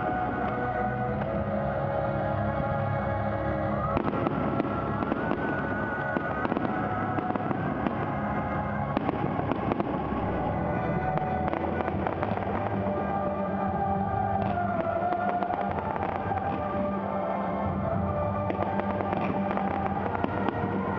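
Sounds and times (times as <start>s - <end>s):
fireworks bangs and crackling: 0.0s - 2.0s, 3.8s - 20.9s
music: 0.0s - 20.9s.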